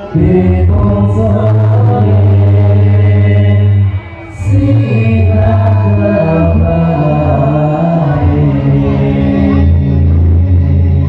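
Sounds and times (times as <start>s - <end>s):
men chanting devotional songs: 0.0s - 11.0s.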